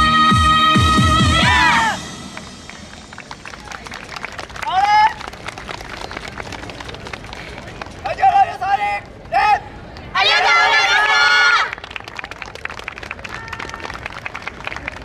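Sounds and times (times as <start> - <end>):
dance music with drum beats: 0.0 - 3.5
loud rising shout: 1.3 - 2.1
audience clapping: 2.2 - 8.2, 11.6 - 15.0
shouted call: 10.2 - 11.7.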